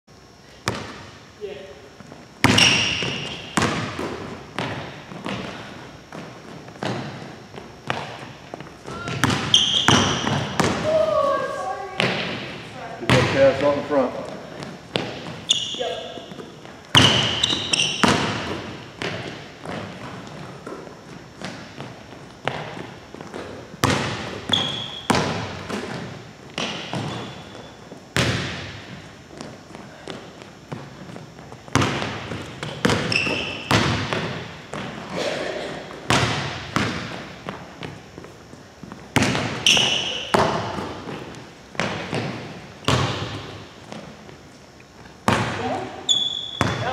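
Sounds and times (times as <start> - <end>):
basketball bouncing on hardwood floor: 0.6 - 1.0, 2.4 - 11.0, 14.6 - 15.5, 16.2 - 20.8, 21.4 - 27.6, 28.2 - 29.5, 30.1 - 35.0, 36.0 - 38.0, 38.8 - 44.1, 45.3 - 46.9
sneakers squeaking on floor: 2.0 - 46.9.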